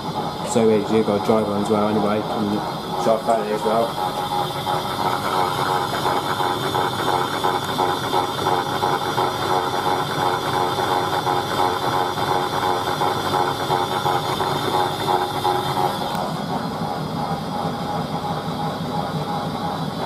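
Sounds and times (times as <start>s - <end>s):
toy washing machine whirring: 0.0s - 18.2s.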